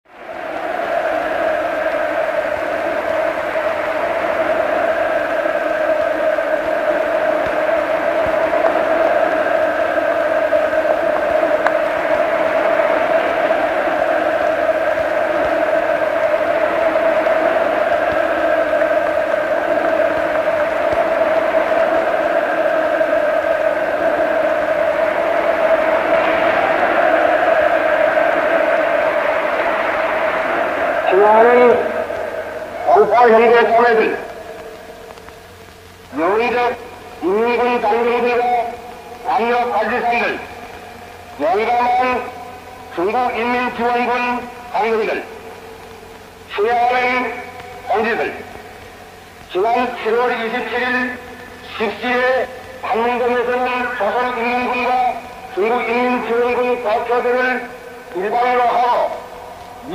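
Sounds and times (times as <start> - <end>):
crowd cheering and shouting: 0.1 - 59.9.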